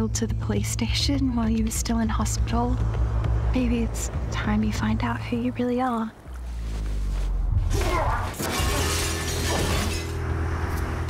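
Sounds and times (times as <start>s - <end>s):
glass shattering: 7.9s - 10.2s.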